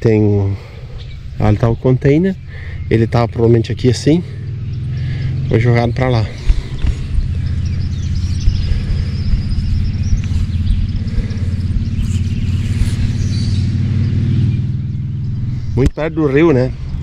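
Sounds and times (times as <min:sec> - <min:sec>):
faint bird chirps: 0:00.7 - 0:17.0
wind buffeting microphone: 0:00.9 - 0:17.0.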